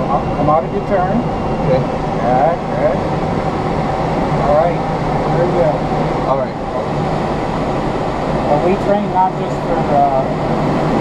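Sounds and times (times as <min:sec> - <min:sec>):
airflow rushing around glider: 0:00.0 - 0:11.0.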